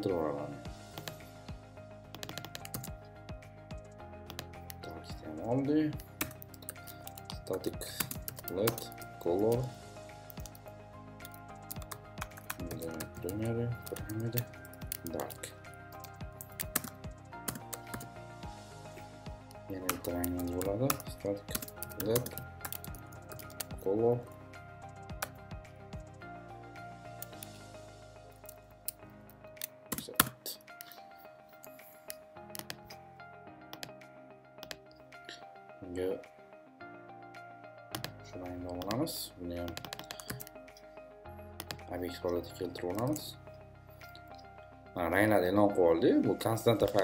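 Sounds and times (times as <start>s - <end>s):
background music sustained notes: 0.0s - 47.0s
keyboard keystrokes clicking: 2.2s - 3.0s, 32.5s - 33.0s, 34.6s - 34.8s, 37.9s - 39.0s, 39.7s - 40.5s.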